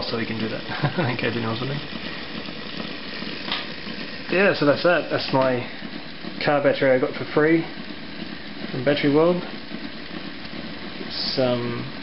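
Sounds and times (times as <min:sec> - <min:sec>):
battery charger humming and hissing: 0:00.0 - 0:12.0.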